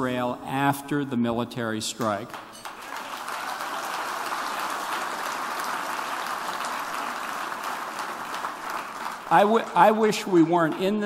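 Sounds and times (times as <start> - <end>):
audience applause: 2.3 - 11.0.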